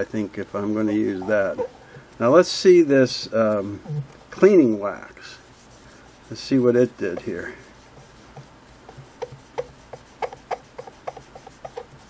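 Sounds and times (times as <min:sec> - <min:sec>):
cloth rubbing painted metal: 0:00.0 - 0:12.0.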